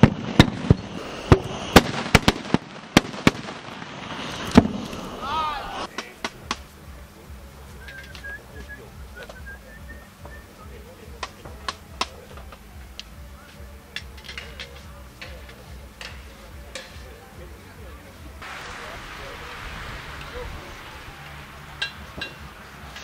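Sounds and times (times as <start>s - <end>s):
faint background voices: 4.9s - 23.0s.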